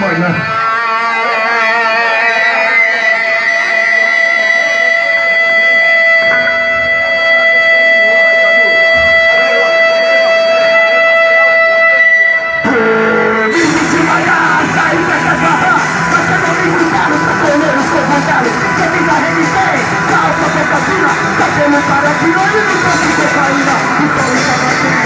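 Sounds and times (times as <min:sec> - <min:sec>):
rock band playing: 0:00.0 - 0:25.0.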